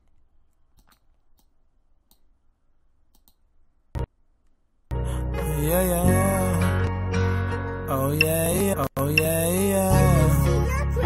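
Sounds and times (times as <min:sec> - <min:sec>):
faint computer mouse clicks: 0:00.0 - 0:02.3, 0:03.1 - 0:03.4.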